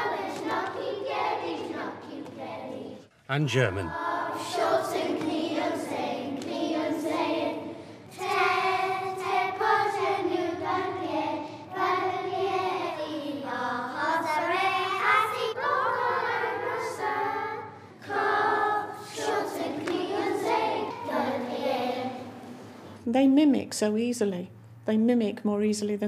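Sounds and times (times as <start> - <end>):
children singing in unison: 0.0 - 3.1, 3.9 - 22.5.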